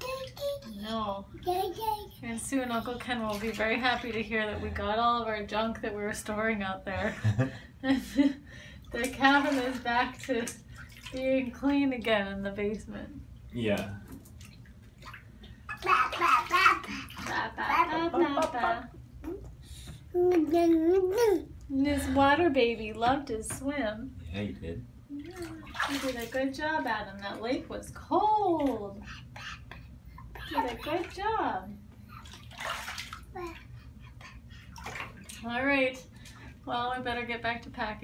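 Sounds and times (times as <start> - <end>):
baby babbling: 0.0 - 2.9, 15.7 - 18.0, 20.1 - 21.5, 28.9 - 31.1, 33.3 - 34.5
bathwater sloshing: 0.0 - 38.0.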